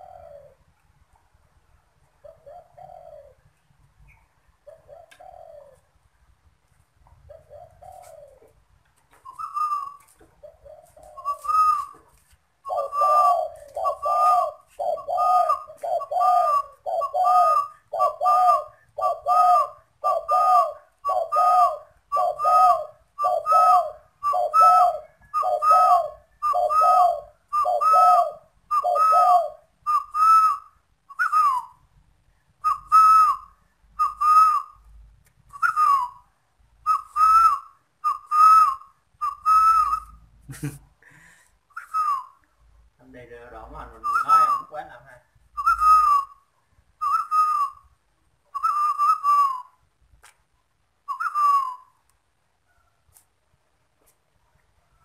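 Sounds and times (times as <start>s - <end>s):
dove cooing: 0.0s - 0.7s, 2.2s - 3.5s, 4.1s - 5.9s, 7.1s - 31.7s, 32.6s - 34.8s, 43.8s - 44.8s, 45.6s - 46.4s, 48.6s - 49.7s, 51.1s - 51.8s.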